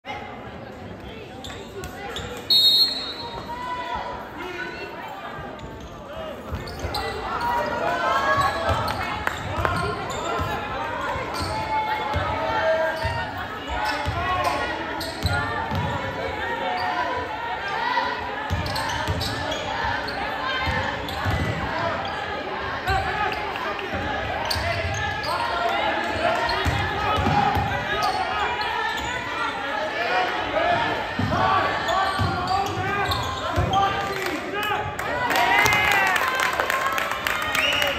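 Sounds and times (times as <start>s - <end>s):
whistle blast: 2.5s - 3.5s
basketball bouncing on court: 15.2s - 16.0s, 20.6s - 21.7s, 26.6s - 27.8s, 32.2s - 33.8s.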